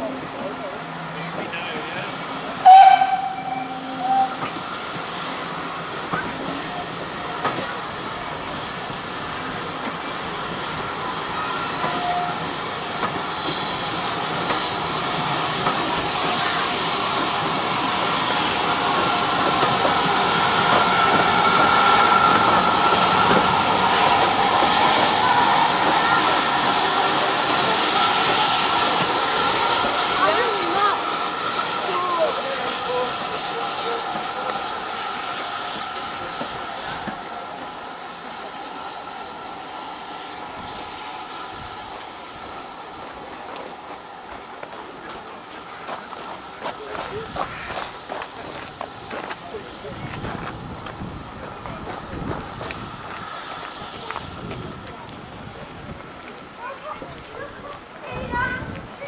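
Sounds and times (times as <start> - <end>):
steam locomotive hissing: 0.0 - 59.0
steam whistle note: 2.6 - 4.5.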